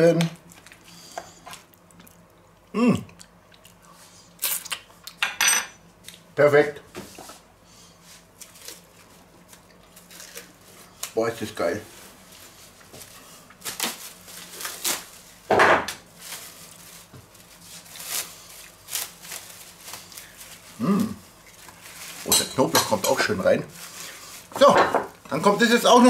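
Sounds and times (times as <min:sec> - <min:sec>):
plastic cling film crinkling: 0:08.4 - 0:24.6.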